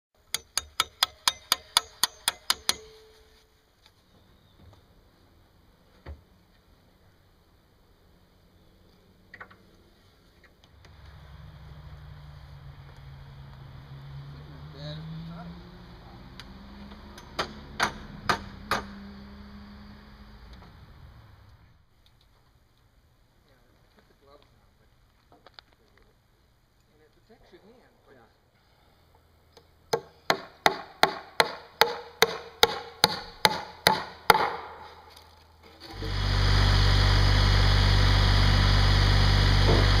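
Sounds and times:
hammer striking metal: 0:00.3 - 0:03.3, 0:17.1 - 0:19.0, 0:29.9 - 0:34.8
steady low hum: 0:35.9 - 0:40.0.

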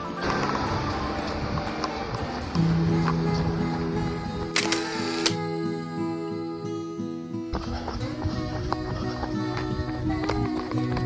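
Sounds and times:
soft background music: 0:00.0 - 0:11.0
camera shutter sound effect: 0:04.5 - 0:05.4.

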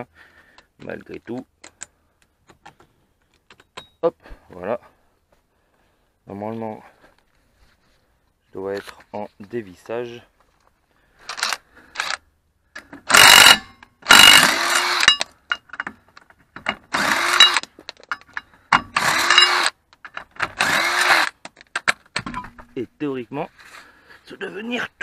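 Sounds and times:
impact wrench bursts: 0:13.0 - 0:15.3, 0:16.7 - 0:17.7, 0:18.7 - 0:19.8, 0:20.4 - 0:21.4.

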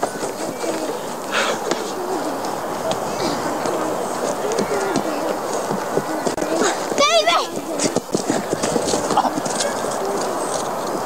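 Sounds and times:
children and onlookers calling out: 0:01.9 - 0:08.0.

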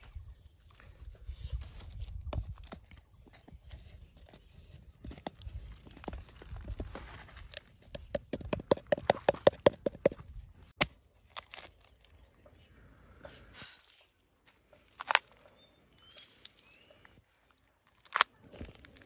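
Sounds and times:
hollow knocks on bamboo tube: 0:07.9 - 0:10.2.

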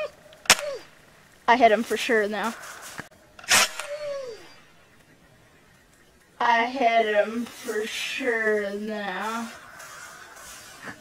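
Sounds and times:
air gun shot: 0:00.4 - 0:00.8, 0:02.6 - 0:04.6.

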